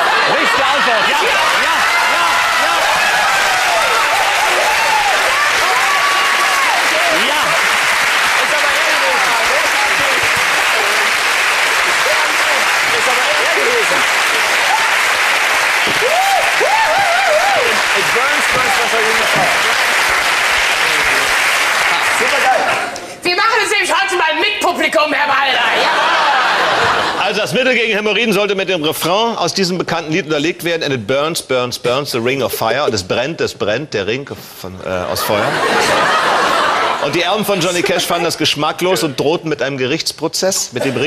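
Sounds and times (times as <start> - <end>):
audience applauding: 0.0 - 23.0.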